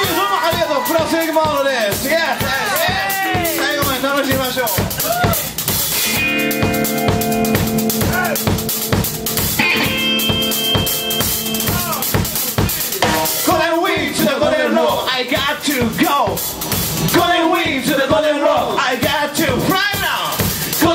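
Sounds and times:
blues-rock band playing: 0.0s - 20.9s
drum kit beat: 0.0s - 20.9s
electric guitar chords ringing: 3.3s - 4.4s, 6.0s - 12.3s, 13.0s - 13.5s.

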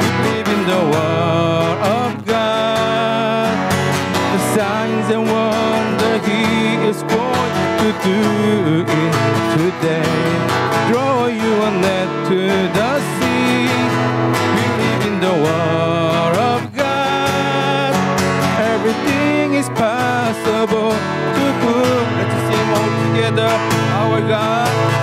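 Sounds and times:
man singing into a microphone: 0.0s - 25.0s
strummed acoustic guitar: 0.0s - 25.0s.

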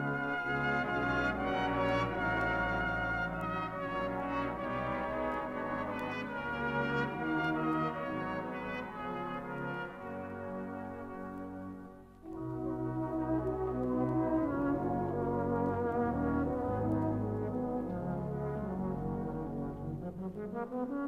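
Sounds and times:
brass band playing chords: 0.0s - 11.2s.

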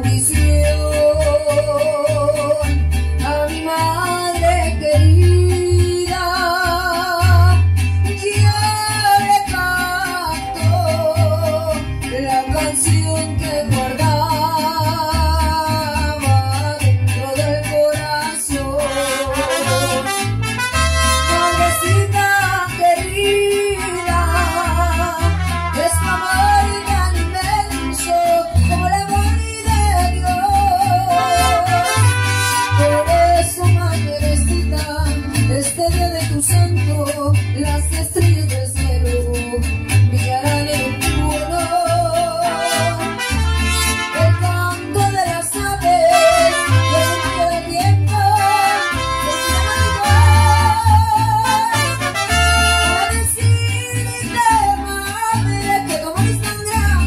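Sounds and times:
strummed guitars: 0.0s - 57.0s
woman singing with vibrato: 0.0s - 57.0s.

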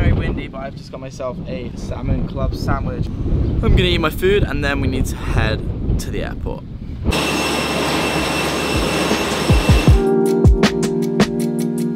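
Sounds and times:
jet airliner roar: 7.1s - 10.1s.

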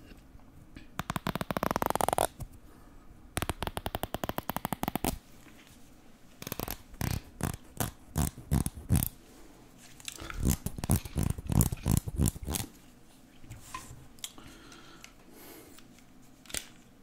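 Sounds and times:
comb teeth clicking: 1.0s - 2.4s, 3.4s - 5.2s, 6.4s - 9.2s, 10.1s - 12.7s.

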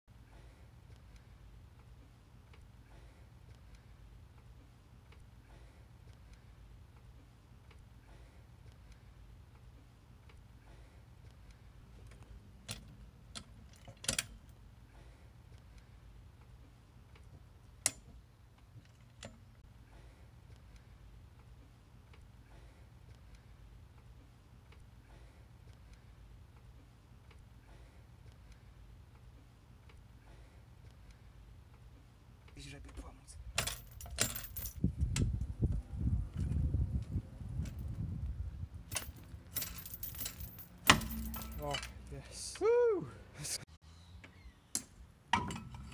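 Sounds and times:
low steady hum: 0.1s - 45.9s
steel chain clinks: 33.6s - 34.8s, 38.9s - 42.0s
sharp metallic clank: 38.9s - 42.0s.

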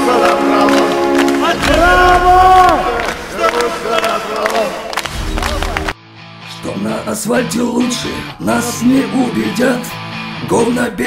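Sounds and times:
voices shouting or chanting: 0.0s - 5.9s
drum hits: 1.4s - 6.0s.

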